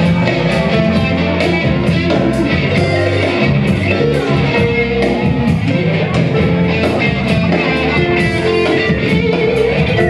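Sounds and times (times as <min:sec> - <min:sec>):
electric rock guitar: 0:00.0 - 0:10.0
rock backing track with drums: 0:00.0 - 0:10.0.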